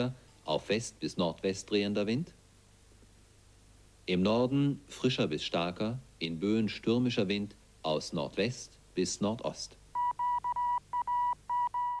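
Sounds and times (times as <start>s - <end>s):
electronic beeps: 10.0s - 12.0s.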